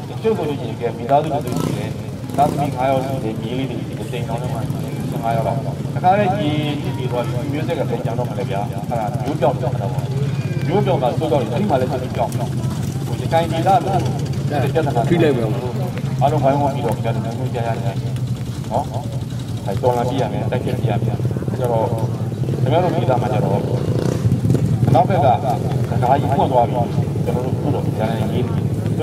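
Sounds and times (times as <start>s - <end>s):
man speaking over loudspeakers: 0.0s - 24.1s, 24.8s - 29.0s.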